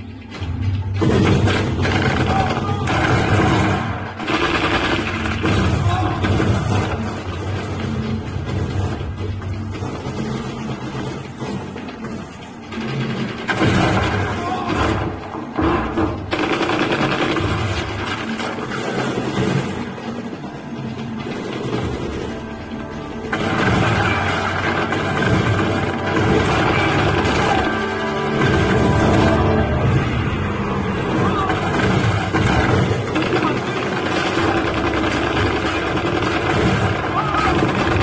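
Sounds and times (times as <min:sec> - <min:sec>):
action film music: 0:00.0 - 0:38.0
gunfire: 0:00.9 - 0:20.4, 0:21.2 - 0:30.2, 0:30.8 - 0:38.0.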